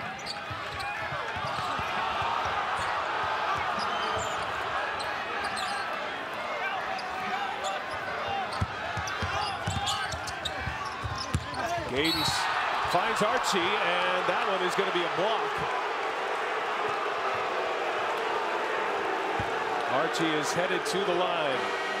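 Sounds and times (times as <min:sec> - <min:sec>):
arena crowd voices: 0:00.0 - 0:22.0.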